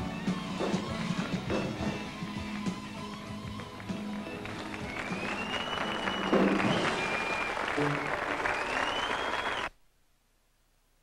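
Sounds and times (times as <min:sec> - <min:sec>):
audience applause and cheering: 0:02.0 - 0:09.7
loud whistles: 0:04.2 - 0:09.7.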